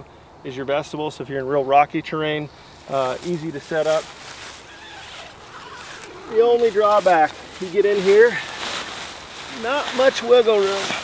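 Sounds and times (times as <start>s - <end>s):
tent door zipper pulled open: 4.6s - 6.3s.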